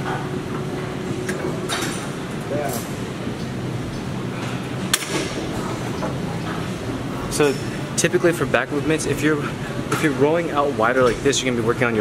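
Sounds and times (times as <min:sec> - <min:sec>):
gym room noise: 0:00.0 - 0:12.0.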